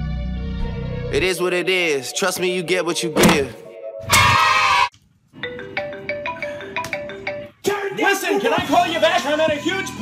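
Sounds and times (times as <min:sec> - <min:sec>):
marimba ringtone: 0:05.4 - 0:07.6.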